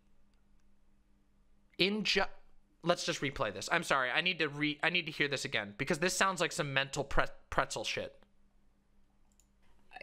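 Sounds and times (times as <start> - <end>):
faint clicks: 9.2 - 9.8.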